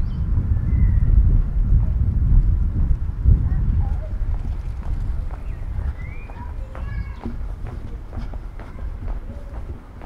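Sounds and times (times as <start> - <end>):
steady low rumble: 0.0 - 10.0
footsteps on brick pavement: 1.7 - 10.0.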